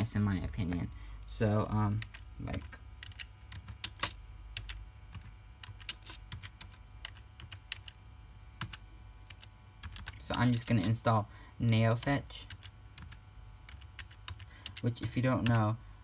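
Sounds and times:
computer keyboard typing: 0:01.9 - 0:08.0, 0:08.6 - 0:11.0, 0:12.0 - 0:15.6.

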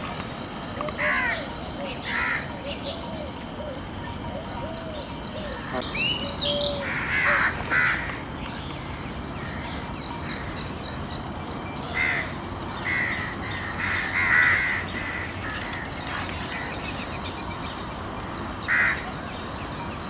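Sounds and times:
steady high hiss: 0:00.0 - 0:20.0
harsh cawing bird calls: 0:00.8 - 0:03.1, 0:05.4 - 0:11.0, 0:11.9 - 0:17.3, 0:18.6 - 0:19.3.

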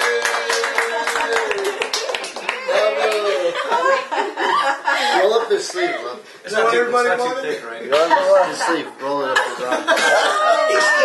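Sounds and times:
people chuckling: 0:02.6 - 0:05.4, 0:07.9 - 0:11.0
people talking: 0:05.0 - 0:11.0.

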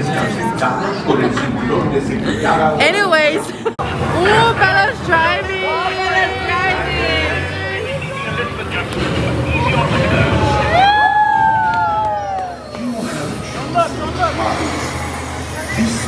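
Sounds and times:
ride vehicle rumbling: 0:03.7 - 0:16.0
wavering wail: 0:10.3 - 0:12.9.

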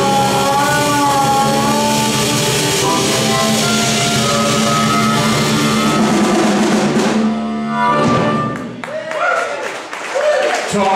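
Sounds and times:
harmonica long notes: 0:00.0 - 0:08.9
blues band playing: 0:00.0 - 0:09.2.

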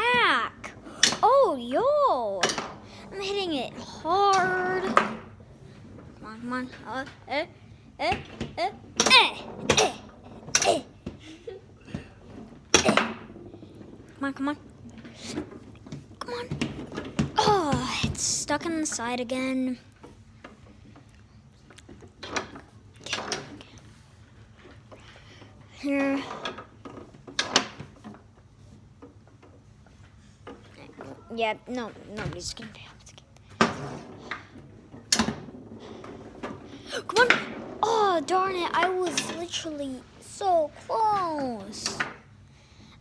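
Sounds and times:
foosball ball knocking: 0:02.4 - 0:02.9, 0:11.9 - 0:14.1
foosball table clack: 0:02.4 - 0:03.1, 0:11.9 - 0:14.1, 0:26.3 - 0:28.2, 0:33.5 - 0:37.9.

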